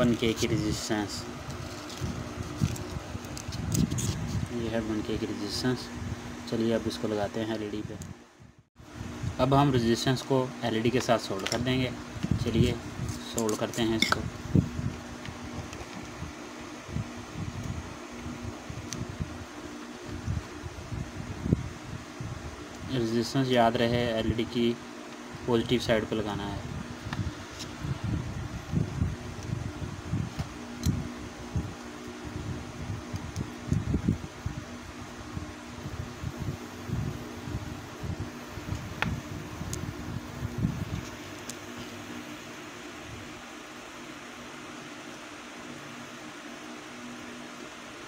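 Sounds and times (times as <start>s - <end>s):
faint steady hum: 0.0s - 48.0s
fan-like whir: 0.0s - 48.0s.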